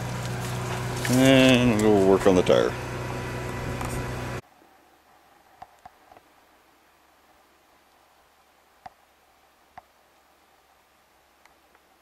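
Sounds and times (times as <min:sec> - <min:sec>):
air compressor humming: 0:00.0 - 0:04.4.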